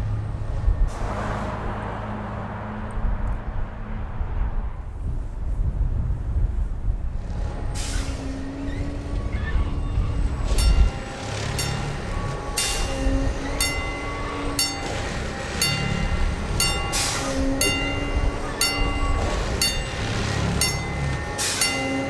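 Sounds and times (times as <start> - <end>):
diesel engine running: 7.0 - 22.0
ringing warning signal: 9.2 - 22.0.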